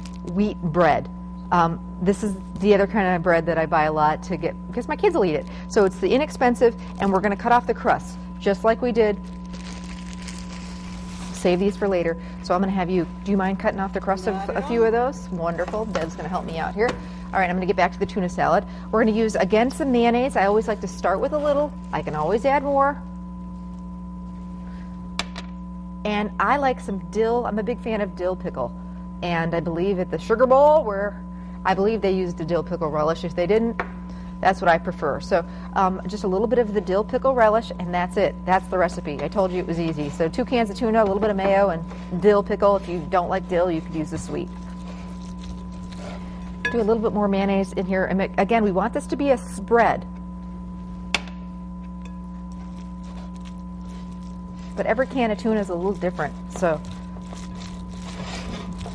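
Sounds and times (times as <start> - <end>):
steady electrical hum: 0.0 - 58.9.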